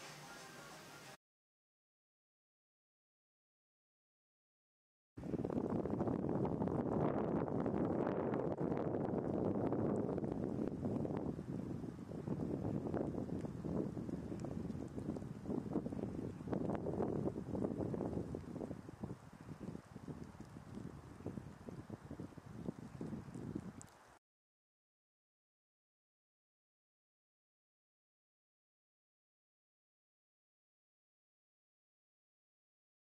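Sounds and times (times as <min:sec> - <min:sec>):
wind buffeting microphone: 0:05.2 - 0:24.1.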